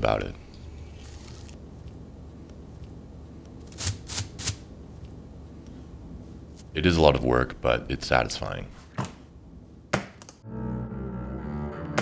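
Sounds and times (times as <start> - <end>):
low room hum: 0.0 - 10.4.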